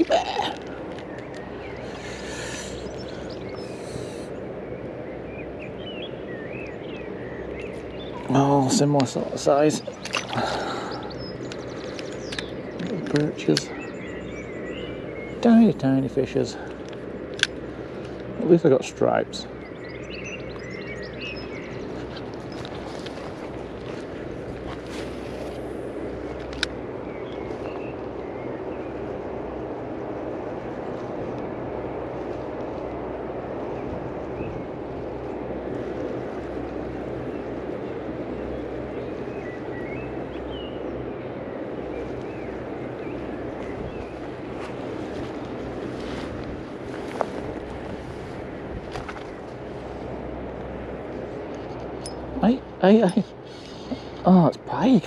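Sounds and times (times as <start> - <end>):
low outdoor rumble: 0.0 - 55.0.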